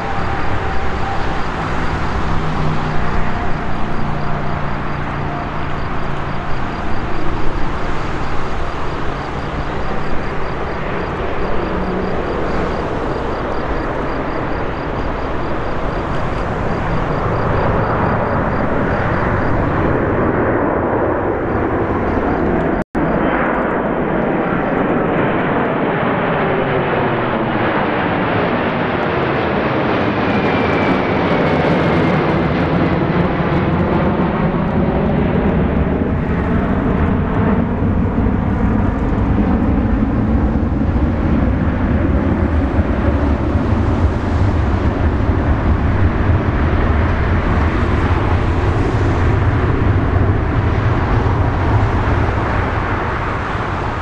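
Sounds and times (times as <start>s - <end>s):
jet engines rumbling: 0.0s - 54.0s.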